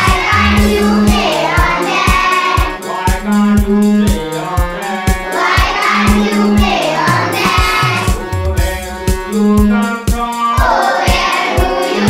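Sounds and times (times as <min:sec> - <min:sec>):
children singing: 0:00.0 - 0:03.5, 0:04.8 - 0:08.4, 0:10.4 - 0:12.0
instrumental accompaniment: 0:00.0 - 0:12.0.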